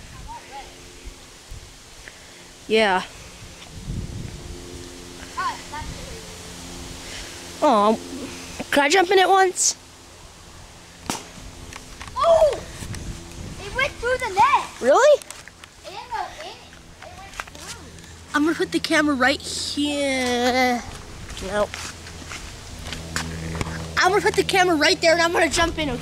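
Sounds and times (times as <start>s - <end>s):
steady low hum: 0.0s - 26.0s
footsteps on grass: 20.8s - 24.4s.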